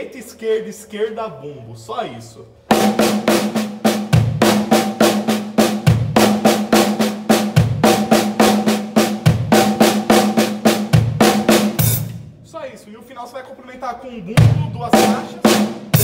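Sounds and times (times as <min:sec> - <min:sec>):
snare drum strokes: 0:02.7 - 0:12.2
bass drum kick: 0:04.0 - 0:06.4, 0:14.4 - 0:15.2.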